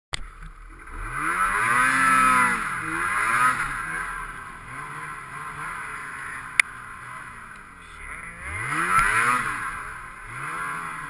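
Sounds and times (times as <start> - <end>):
snowmobile engine revving: 0.2 - 11.0.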